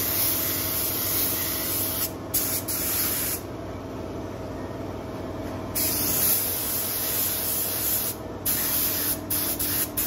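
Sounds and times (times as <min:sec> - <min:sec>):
paint sprayer hissing: 0:05.8 - 0:10.0.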